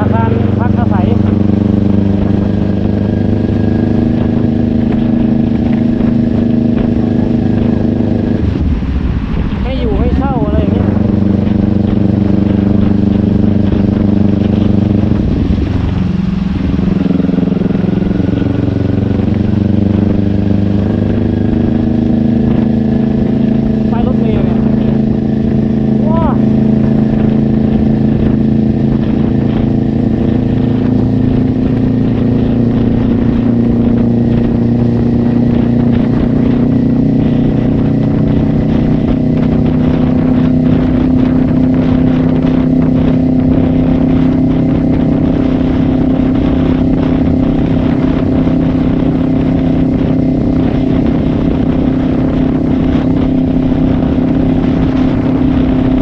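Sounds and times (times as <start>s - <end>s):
motorcycle engine droning: 0.0s - 56.0s.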